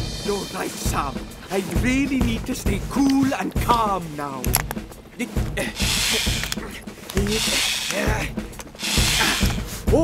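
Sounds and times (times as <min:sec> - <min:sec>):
background music: 0:00.0 - 0:10.0
cartoon cordless drill running: 0:05.7 - 0:08.1, 0:08.7 - 0:09.6.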